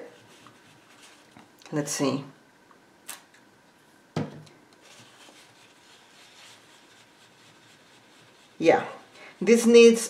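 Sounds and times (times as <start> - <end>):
paper napkin scrubbing canvas: 0.0 - 1.4, 4.8 - 10.0.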